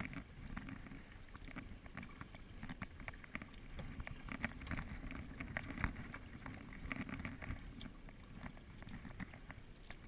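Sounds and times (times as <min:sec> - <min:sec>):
water dripping along hull: 0:00.0 - 0:10.0.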